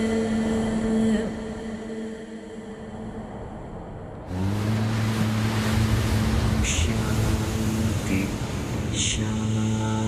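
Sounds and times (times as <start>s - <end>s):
ocean waves crashing on rocks: 4.2s - 10.0s.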